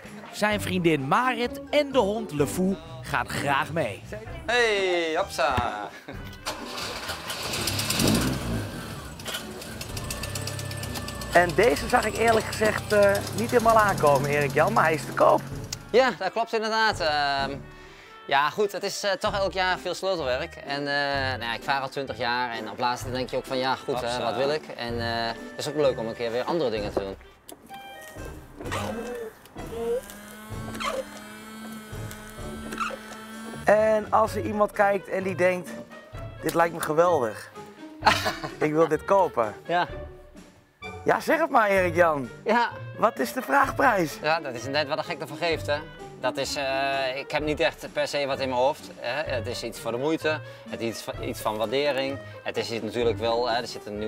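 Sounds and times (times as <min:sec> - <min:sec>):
fine rapid engine ticking: 0:06.8 - 0:15.8
car engine running: 0:07.4 - 0:15.8.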